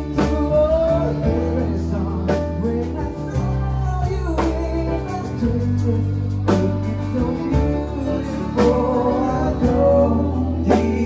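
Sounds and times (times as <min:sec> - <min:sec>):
live band playing: 0:00.0 - 0:11.0
person singing: 0:00.0 - 0:11.0.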